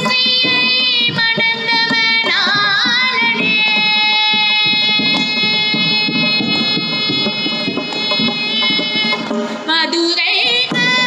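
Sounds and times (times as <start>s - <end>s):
instrumental drone: 3.2s - 9.6s
woman singing melody: 9.7s - 11.0s.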